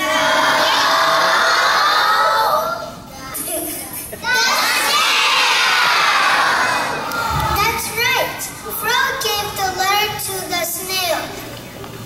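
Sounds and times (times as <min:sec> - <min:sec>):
children shouting together: 0:00.0 - 0:02.9, 0:04.2 - 0:07.4.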